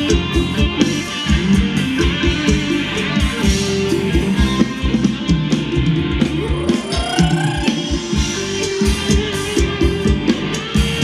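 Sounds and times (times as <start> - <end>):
electric guitar: 0.0 - 11.0
fast drum beat: 0.0 - 11.0
live band dance music: 0.0 - 11.0.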